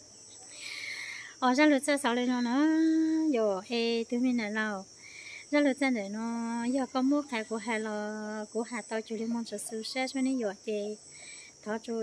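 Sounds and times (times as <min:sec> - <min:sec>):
high drone of insects: 0:00.0 - 0:12.0.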